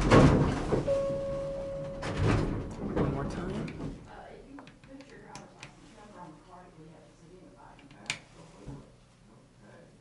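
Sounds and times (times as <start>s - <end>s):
elevator doors rumbling clatter: 0.0s - 4.0s
steady single-pitched tone: 0.9s - 2.2s.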